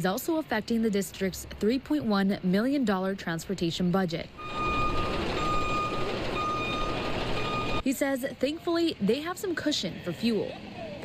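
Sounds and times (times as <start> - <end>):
diesel engine rumble: 4.2 - 7.8
reversing alarm beeps: 4.4 - 7.8.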